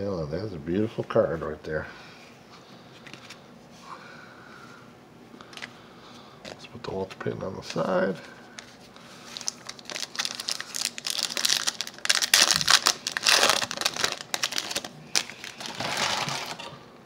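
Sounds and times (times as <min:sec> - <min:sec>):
foil wrapper crinkling and tearing: 0:08.6 - 0:16.7.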